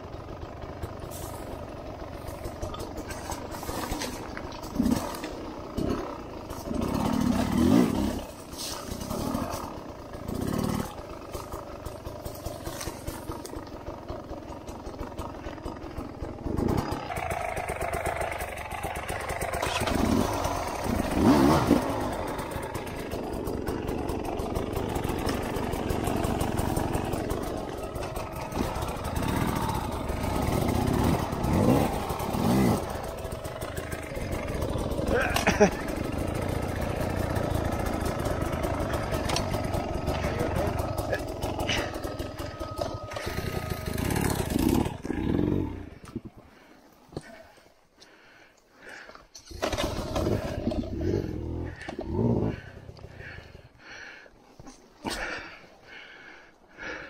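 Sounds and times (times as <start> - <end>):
dirt bike engine revving: 0.0 - 47.3, 48.8 - 54.1.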